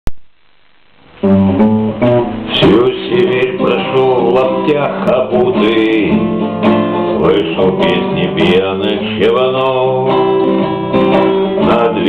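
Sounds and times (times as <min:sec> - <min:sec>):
acoustic guitar picking: 0:01.1 - 0:12.0.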